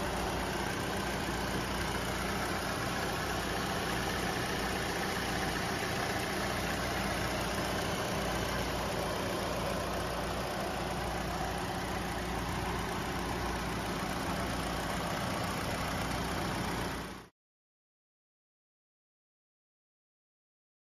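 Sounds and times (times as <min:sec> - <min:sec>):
car engine idling: 0:00.0 - 0:17.3.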